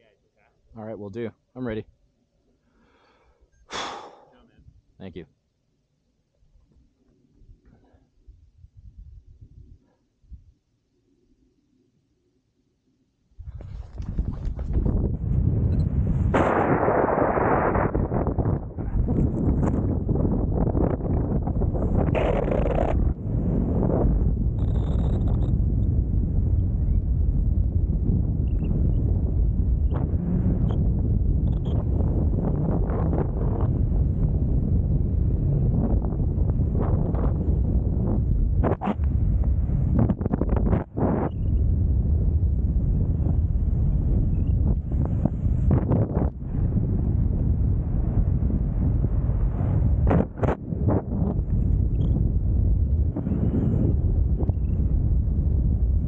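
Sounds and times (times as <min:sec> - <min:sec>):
wind buffeting microphone: 0:13.4 - 0:56.0.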